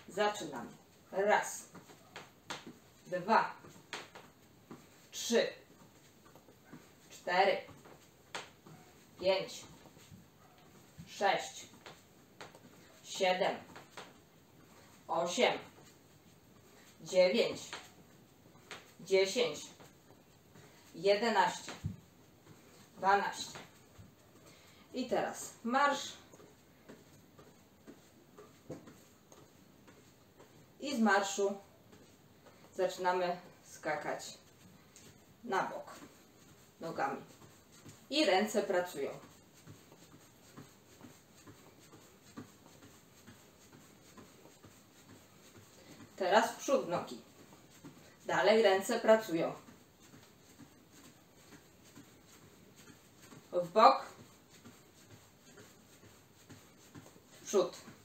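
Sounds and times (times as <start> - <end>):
soft footfalls on an exercise mat: 0.0 - 58.0.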